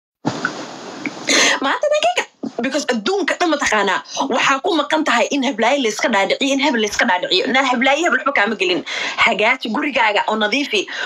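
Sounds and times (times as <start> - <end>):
steady hiss: 0.2 - 1.7
woman speaking: 1.3 - 11.0.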